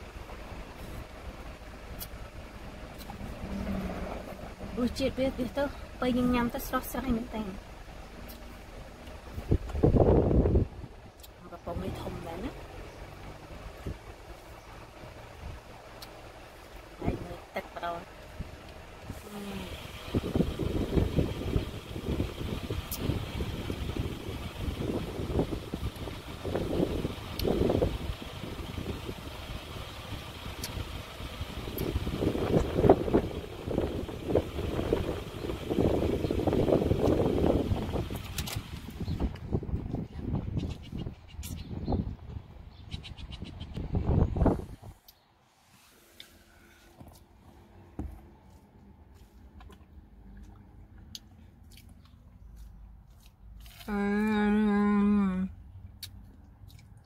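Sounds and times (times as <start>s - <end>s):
car road noise: 0.0s - 57.0s
wind buffeting microphone: 9.1s - 13.1s, 18.3s - 45.0s.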